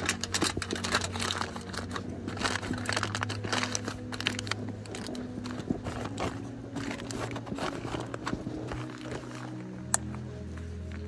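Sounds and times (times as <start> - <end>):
aluminium foil crinkling: 0.0 - 11.0
fabric bag rustling: 0.0 - 11.0
low steady hum: 0.0 - 11.0.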